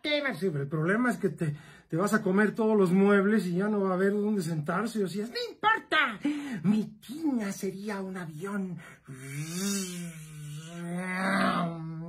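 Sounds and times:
man imitating airplane engine: 9.1 - 11.7.

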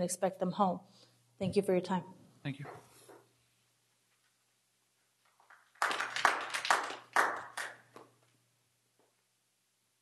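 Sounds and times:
audience clapping: 5.3 - 8.2.

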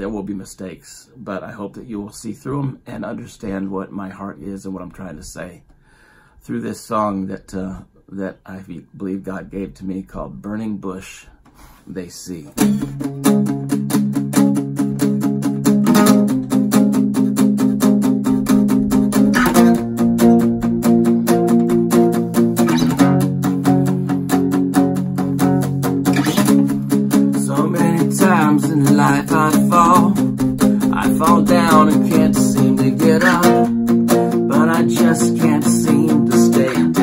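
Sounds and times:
guitar strummed: 12.6 - 37.0.

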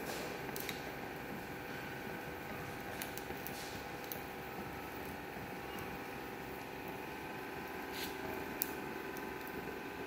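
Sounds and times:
welding torch flame hissing: 0.0 - 10.0.

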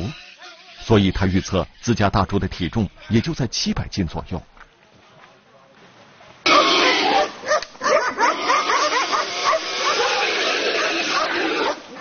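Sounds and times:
constant background noise: 0.0 - 12.0
dogs barking and yelping: 6.5 - 12.0.

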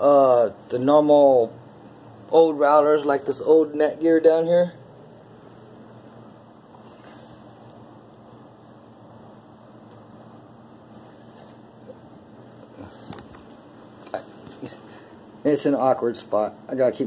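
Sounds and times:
faint room hum: 0.0 - 17.0.

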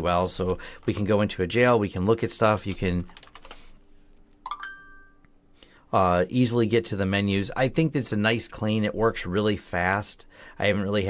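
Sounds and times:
faint steady hum: 0.0 - 11.0
short ringing tone: 4.5 - 5.3.

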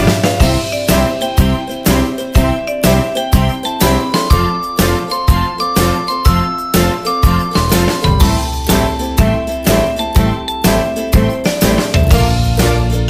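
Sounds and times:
music with tinkling bell melody: 0.0 - 13.0.

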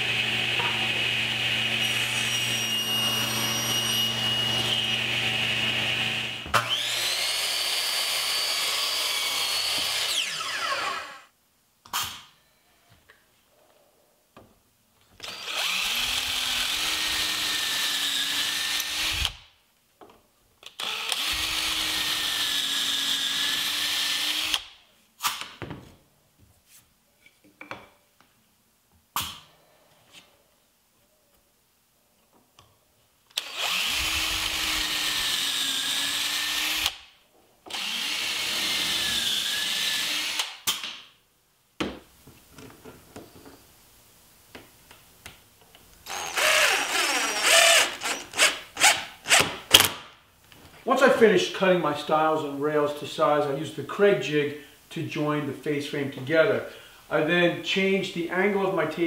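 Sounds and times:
power drill whining: 0.0 - 11.3, 15.2 - 19.4, 20.8 - 24.6, 33.4 - 37.0, 37.7 - 40.6, 46.0 - 49.9.

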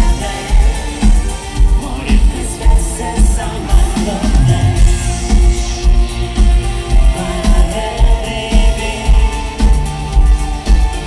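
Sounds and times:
heavy kick drum: 0.0 - 11.0
live synth-pop band: 0.0 - 11.0.

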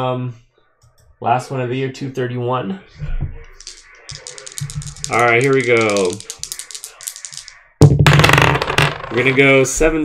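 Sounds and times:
dice rattling in a hand: 3.6 - 7.5.

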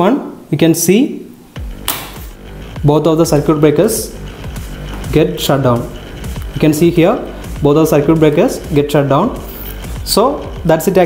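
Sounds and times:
circuit breaker tripping click: 1.8 - 2.4.

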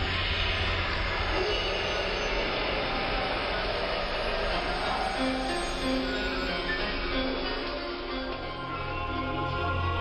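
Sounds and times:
spooky soundtrack rumbling and hissing: 0.0 - 10.0
spooky music: 1.2 - 10.0.

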